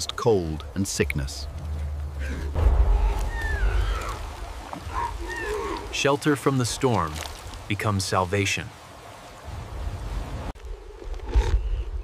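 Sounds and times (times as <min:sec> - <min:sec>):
low storm rumble: 0:00.0 - 0:06.8
moaning animal calls: 0:02.1 - 0:06.0.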